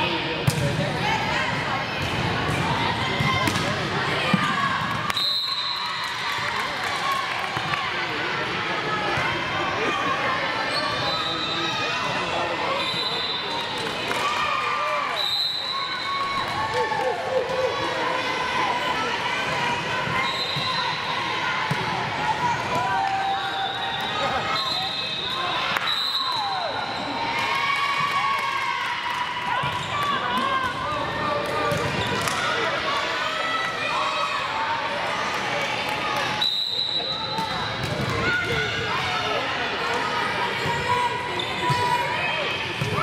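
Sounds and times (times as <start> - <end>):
voices of players and spectators: 0.0 - 43.0.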